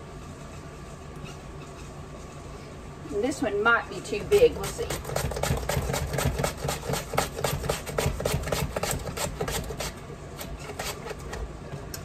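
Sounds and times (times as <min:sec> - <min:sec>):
low steady hum: 0:00.0 - 0:12.0
potato rasping on grater: 0:04.4 - 0:11.3.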